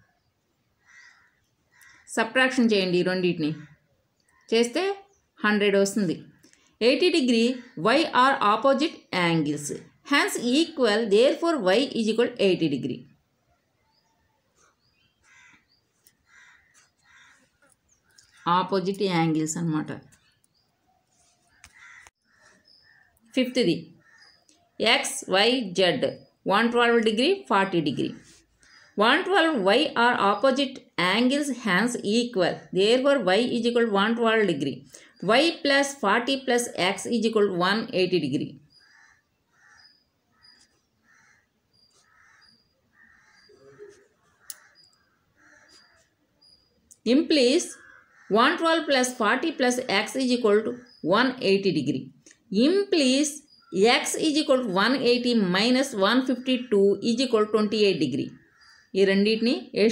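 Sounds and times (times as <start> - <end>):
faint harsh bird calls: 0.0 - 19.4, 20.0 - 31.9, 37.3 - 46.9, 47.5 - 48.9, 58.4 - 59.0.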